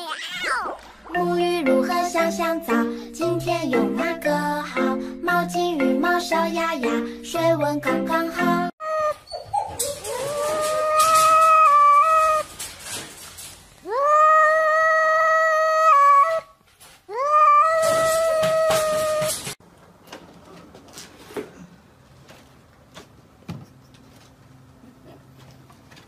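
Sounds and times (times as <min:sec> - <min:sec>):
dog howling: 0:08.8 - 0:12.5, 0:13.9 - 0:16.5, 0:17.2 - 0:19.4.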